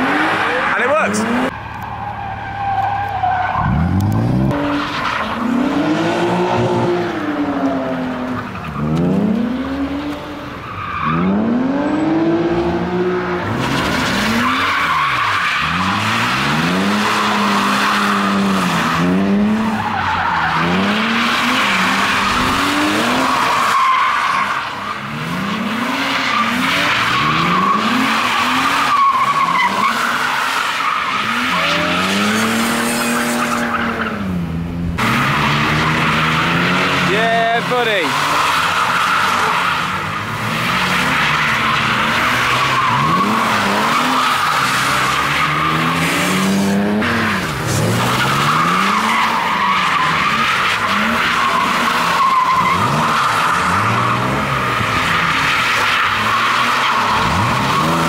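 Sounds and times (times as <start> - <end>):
tyres squealing on tarmac: 0.0 - 4.0, 13.4 - 34.3, 35.0 - 58.0
car engine revving: 0.0 - 58.0.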